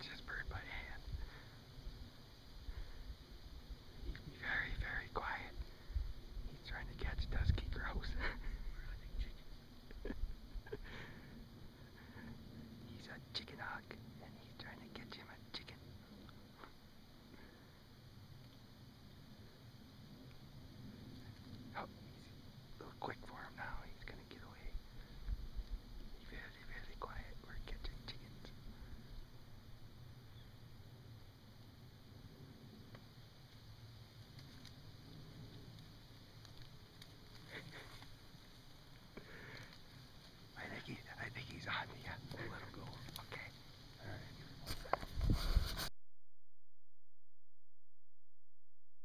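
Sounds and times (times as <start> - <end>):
person whispering: 0.0 - 1.2, 4.1 - 5.8, 6.4 - 9.6, 12.8 - 16.2, 21.7 - 24.9, 26.2 - 28.9, 40.5 - 45.0
faint clicks: 18.4 - 18.7, 20.2 - 20.4, 32.9 - 40.5.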